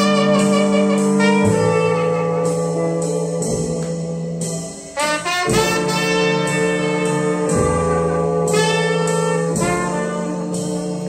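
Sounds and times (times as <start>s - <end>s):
slow jazz with brass horns: 0.0s - 11.0s.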